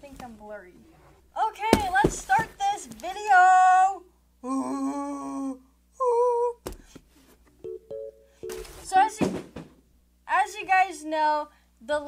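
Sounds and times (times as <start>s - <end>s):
person humming: 4.4s - 6.6s.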